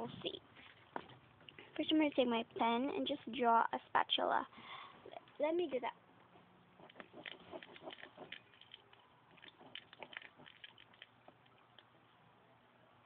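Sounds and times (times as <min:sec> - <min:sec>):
pen scratching on cardboard: 0:06.4 - 0:08.7, 0:09.3 - 0:10.8.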